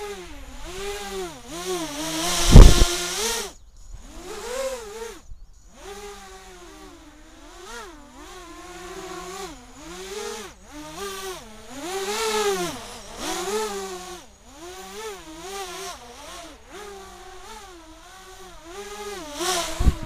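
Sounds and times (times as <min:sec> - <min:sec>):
quadcopter propellers buzzing: 0:00.0 - 0:20.0.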